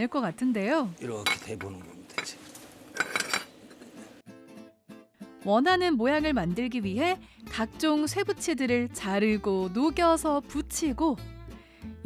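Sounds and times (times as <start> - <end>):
steel rod clinking on concrete: 3.0 - 3.6.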